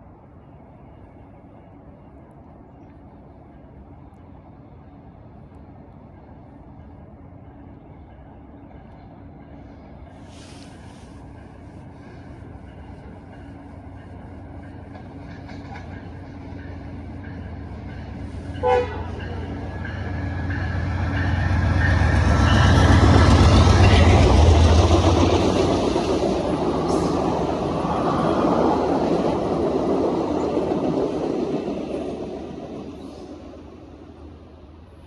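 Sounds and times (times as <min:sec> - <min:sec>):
diesel locomotive rumble: 0:00.0 - 0:35.0
brief hiss: 0:10.2 - 0:12.3.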